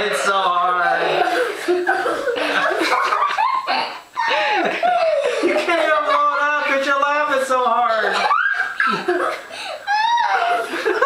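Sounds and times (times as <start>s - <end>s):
people laughing: 0.0s - 7.2s, 7.9s - 11.0s.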